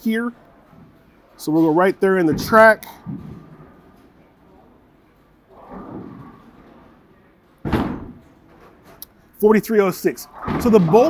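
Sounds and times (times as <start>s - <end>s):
bowling ball thud: 2.3s - 4.7s, 5.5s - 7.0s, 7.6s - 9.0s, 10.2s - 11.0s
faint rubbing of bowling ball: 2.8s - 7.5s.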